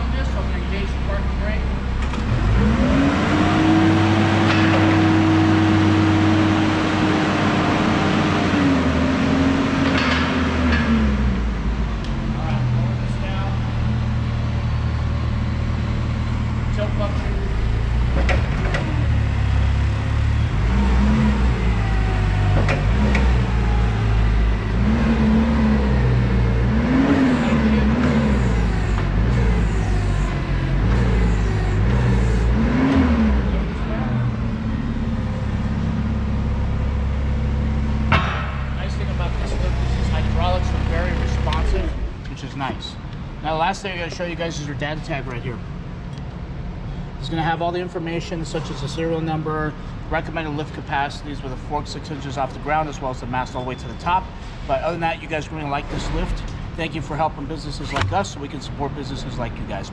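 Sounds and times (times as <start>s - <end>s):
forklift engine revving: 0.0s - 43.7s
metal clank: 38.1s - 39.0s.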